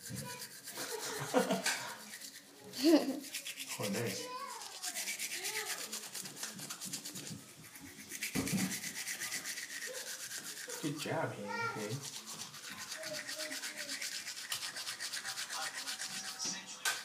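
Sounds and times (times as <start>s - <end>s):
toothbrush scrubbing teeth: 0.0s - 17.0s.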